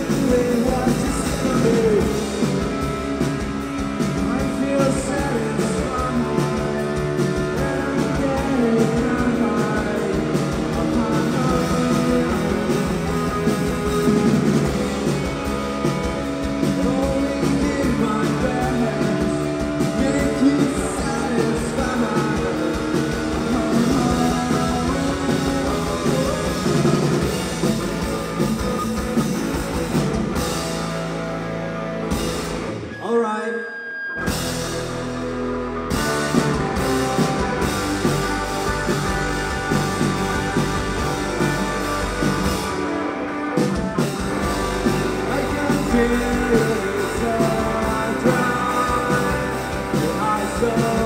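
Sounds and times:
lead vocal singing: 0.0s - 3.0s, 4.0s - 15.3s, 16.4s - 27.4s, 44.4s - 51.0s
rock band playing loudly: 0.0s - 33.2s, 34.1s - 51.0s.

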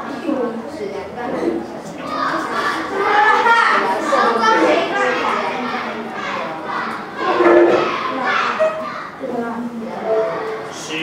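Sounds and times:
babble of children's voices: 0.0s - 10.8s.

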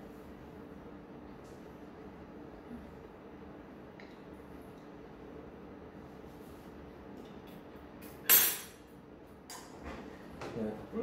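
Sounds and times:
kitchenware clinking: 8.1s - 8.8s.

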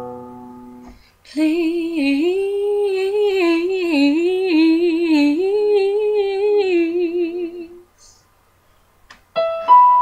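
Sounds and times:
woman singing unaccompanied: 1.2s - 8.2s.

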